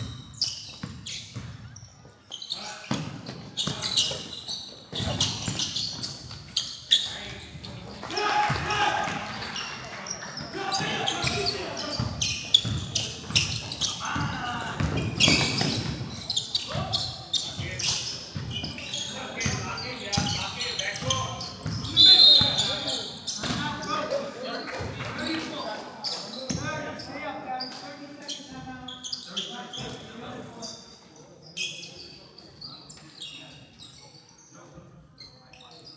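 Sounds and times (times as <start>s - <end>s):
voices in a large gym: 0.0s - 35.9s
referee's whistle: 21.8s - 23.0s.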